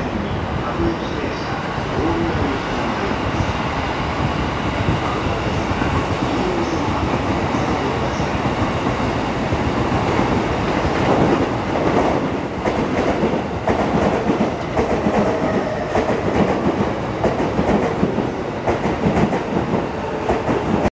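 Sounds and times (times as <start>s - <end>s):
electric train passing: 0.0s - 20.9s.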